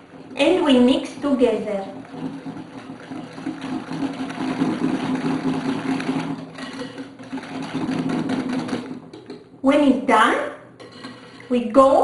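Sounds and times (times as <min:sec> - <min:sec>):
wire whisk scraping glass bowl: 0:00.4 - 0:08.8, 0:10.8 - 0:11.9.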